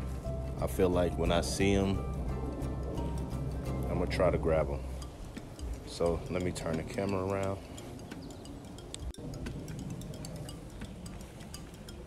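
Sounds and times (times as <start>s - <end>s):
steady low rumble: 0.0s - 12.0s
faint high-pitched ticks: 5.0s - 12.0s.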